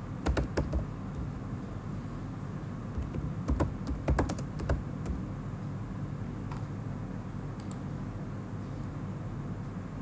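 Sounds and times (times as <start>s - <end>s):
steady low hum: 0.0s - 10.0s
keyboard key clicks: 3.0s - 5.2s.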